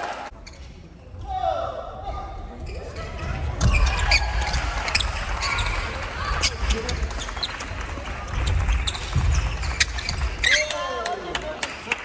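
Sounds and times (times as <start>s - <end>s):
shoes squeaking on boards: 8.3s - 10.9s.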